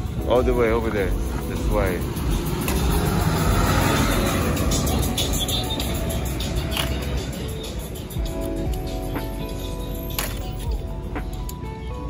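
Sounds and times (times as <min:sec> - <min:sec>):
vehicle passing road rumble: 0:01.2 - 0:08.1.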